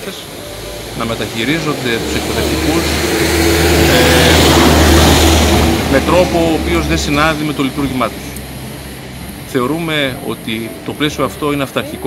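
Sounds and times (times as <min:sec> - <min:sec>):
people talking: 0:00.0 - 0:03.0, 0:03.8 - 0:04.7, 0:05.9 - 0:08.3, 0:09.5 - 0:12.0
vehicle engine: 0:00.0 - 0:12.0.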